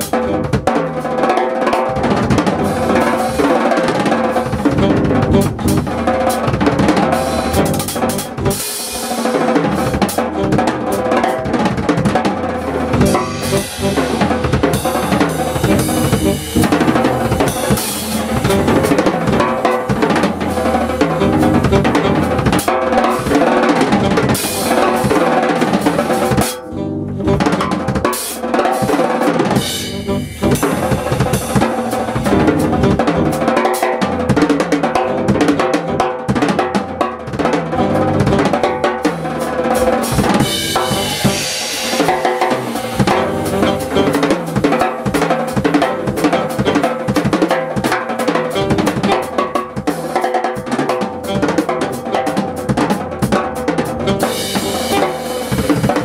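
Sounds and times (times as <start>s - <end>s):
band holding pitched notes: 0.0s - 56.0s
jazz drum kit playing: 0.0s - 56.0s.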